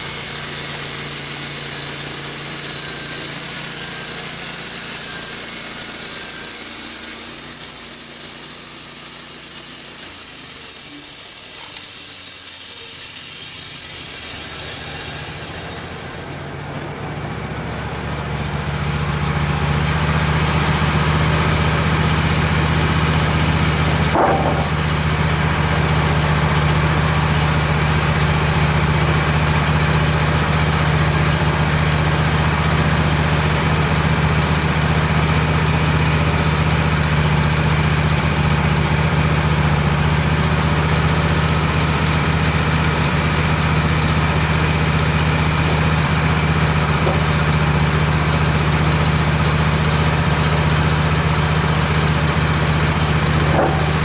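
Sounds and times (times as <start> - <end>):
sawmill engine idling: 0.0 - 54.0.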